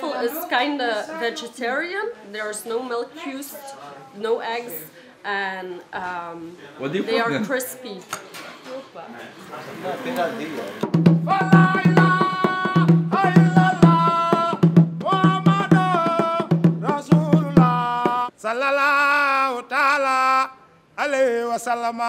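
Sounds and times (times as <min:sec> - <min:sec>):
man singing long notes: 0:11.2 - 0:21.6.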